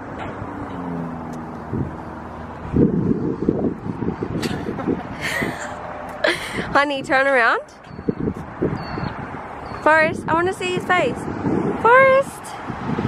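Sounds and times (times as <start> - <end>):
vehicle engine hum: 0.0 - 13.0.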